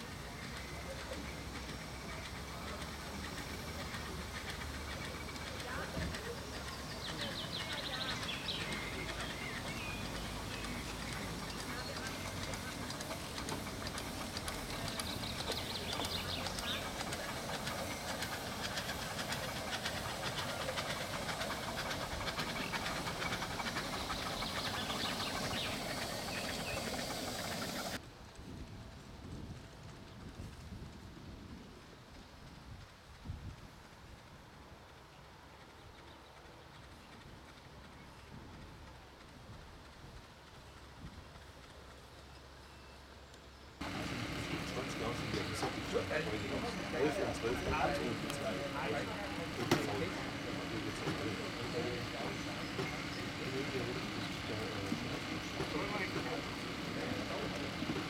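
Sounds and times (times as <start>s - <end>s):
steam hissing: 0.0s - 28.0s, 43.8s - 58.0s
outdoor background noise: 0.0s - 58.0s
wheels clicking on track: 0.0s - 58.0s.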